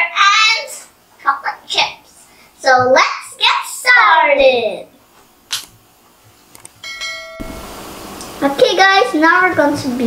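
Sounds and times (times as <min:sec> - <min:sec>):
bright bell chime: 0:06.8 - 0:07.7.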